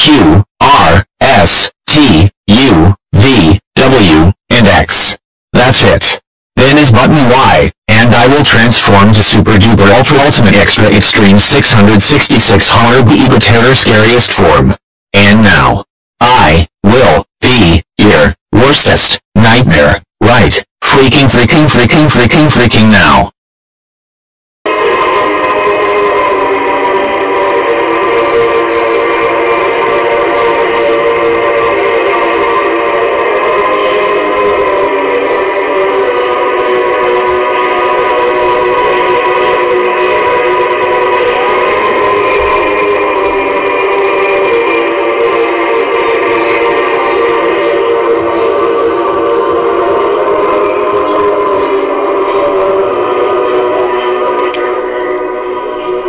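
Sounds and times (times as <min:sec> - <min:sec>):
dissonant drone of sustained tones: 0:24.7 - 0:56.0.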